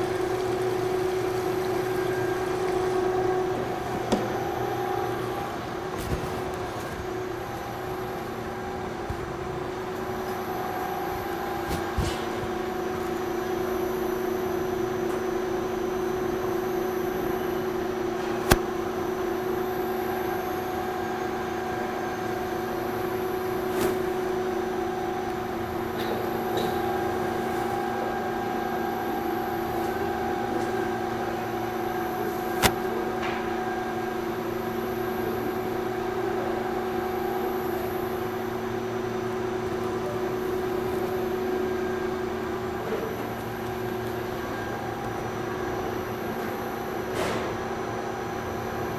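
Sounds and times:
electric pump motor humming: 0.0 - 48.9.

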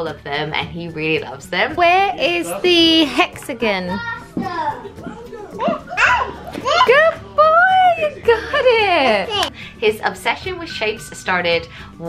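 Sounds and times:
toddler speaking: 3.9 - 6.9.

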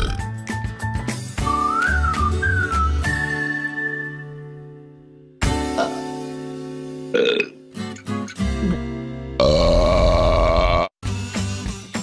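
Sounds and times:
cartoon burp: 0.0 - 0.2, 7.1 - 7.6, 9.4 - 11.0
background music: 0.0 - 12.0.

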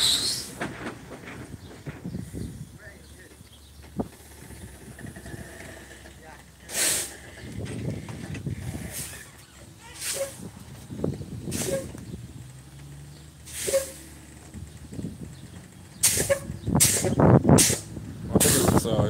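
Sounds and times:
truck air brakes hissing: 0.0 - 1.0, 5.3 - 7.6, 8.6 - 10.7, 11.4 - 12.2, 12.9 - 14.3, 16.0 - 18.9.

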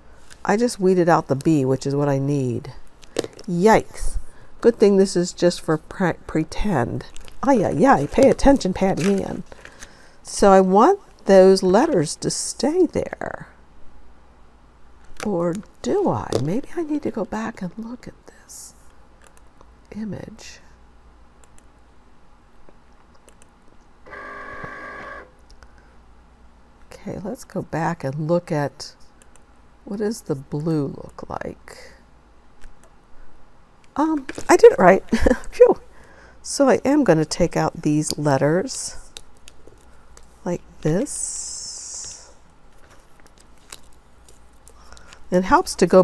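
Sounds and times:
low steady hum: 0.0 - 46.0
vinyl peeling ticks and crackles: 7.0 - 9.8, 39.1 - 40.4, 42.7 - 45.3.

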